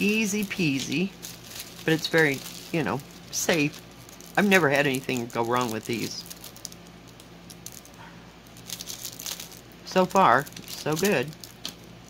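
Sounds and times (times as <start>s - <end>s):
cellophane rustling and clicks: 0.0s - 12.0s
low room hum: 0.0s - 12.0s.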